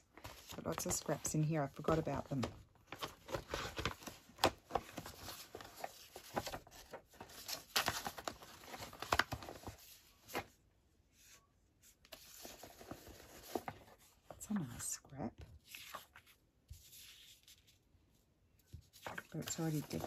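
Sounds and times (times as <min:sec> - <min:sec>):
paper rustling and crinkling: 0:00.0 - 0:10.6, 0:11.2 - 0:14.9, 0:15.5 - 0:20.0.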